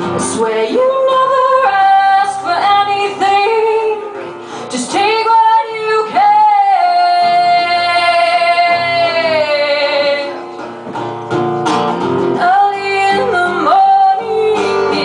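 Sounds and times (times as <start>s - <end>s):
woman singing: 0.0s - 10.4s, 12.3s - 15.0s
acoustic guitar: 0.0s - 15.0s.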